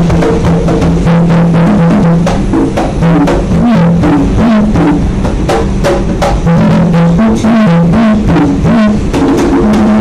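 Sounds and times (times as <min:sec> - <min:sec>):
conga drums played by hand: 0:00.0 - 0:10.0.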